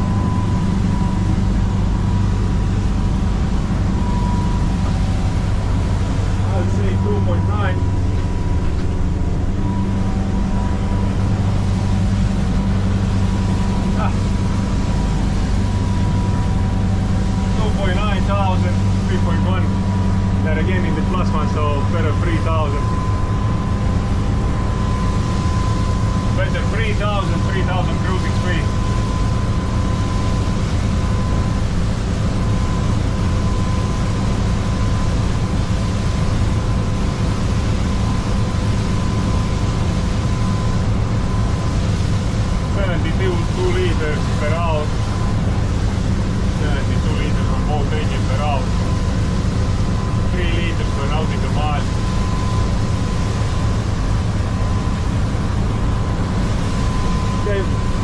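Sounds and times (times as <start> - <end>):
diesel boat engines droning: 0.0 - 58.0
rush of wind and water: 0.0 - 58.0
thin steady whine: 0.0 - 58.0.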